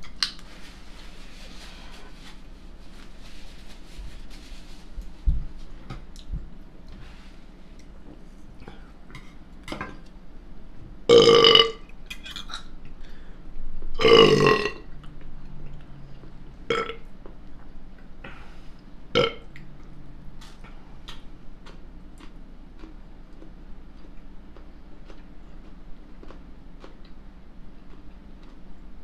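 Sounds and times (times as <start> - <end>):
man burping loudly: 11.1 - 11.8, 14.0 - 14.8.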